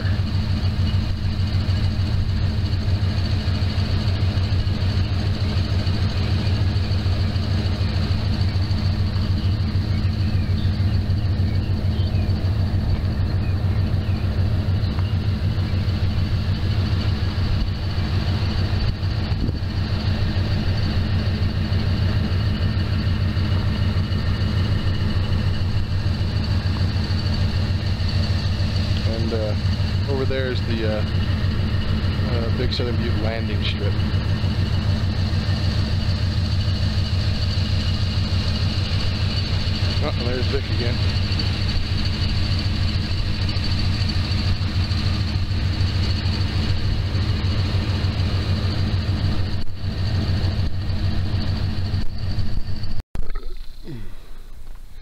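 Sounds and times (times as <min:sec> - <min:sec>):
road noise: 0:00.0 - 0:55.0
vehicle engine drone: 0:00.0 - 0:55.0.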